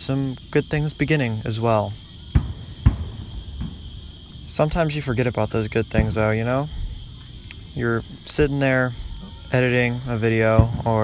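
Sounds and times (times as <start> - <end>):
crickets chirring: 0.0 - 11.0
distant fireworks booming: 0.0 - 11.0.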